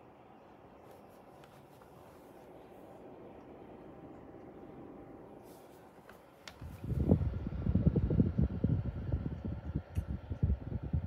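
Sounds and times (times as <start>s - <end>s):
air purifier fan buffeting microphone: 0.0s - 11.0s.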